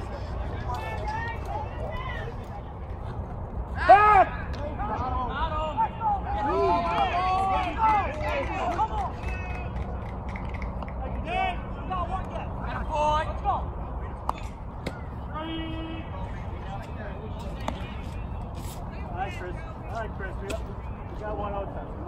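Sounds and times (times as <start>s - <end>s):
players shouting: 3.7s - 9.9s.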